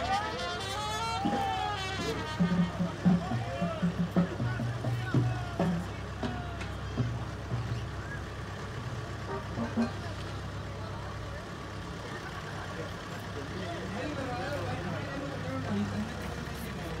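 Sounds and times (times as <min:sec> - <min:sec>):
crowd voices: 0:00.0 - 0:17.0
tractor diesel engine running: 0:00.0 - 0:17.0.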